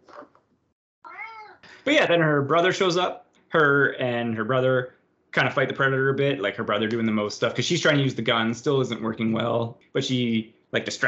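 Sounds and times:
cat meowing: 0:01.1 - 0:01.6.

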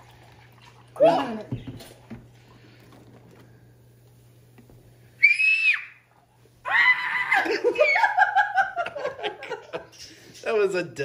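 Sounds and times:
girl squealing: 0:05.2 - 0:06.0, 0:06.6 - 0:08.2.

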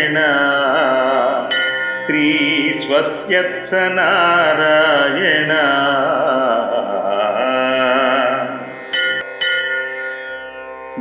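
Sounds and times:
bell-like chime strikes: 0:01.5 - 0:02.1, 0:09.0 - 0:10.2.

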